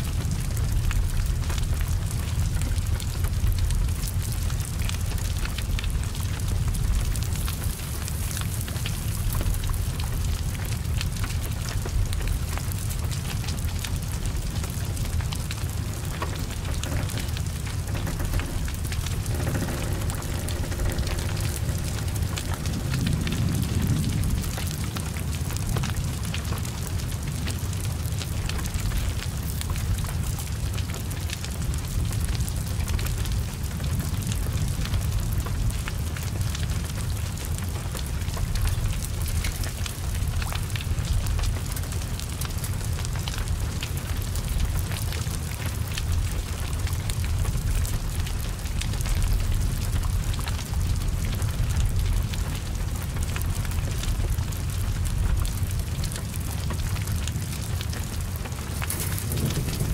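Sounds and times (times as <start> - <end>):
burning car rumble: 0.0 - 28.4, 43.4 - 59.9
fire crackling: 0.0 - 59.9
heavy rain falling: 0.0 - 59.9.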